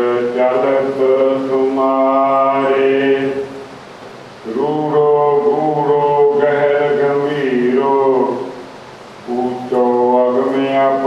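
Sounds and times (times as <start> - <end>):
man chanting in held notes: 0.0 - 3.6, 4.4 - 8.6, 9.2 - 11.0.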